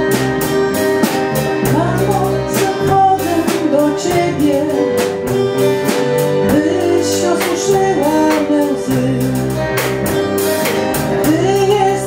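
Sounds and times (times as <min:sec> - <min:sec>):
instrumental accompaniment with beat: 0:00.0 - 0:12.0
woman singing: 0:01.6 - 0:05.3, 0:06.3 - 0:12.0.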